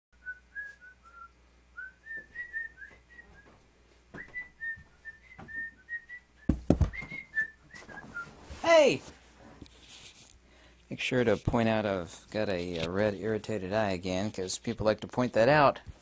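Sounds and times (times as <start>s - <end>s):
person whistling a tune: 0.2s - 3.5s, 4.2s - 8.3s
thumps of sitting in leather chair: 6.5s - 7.2s.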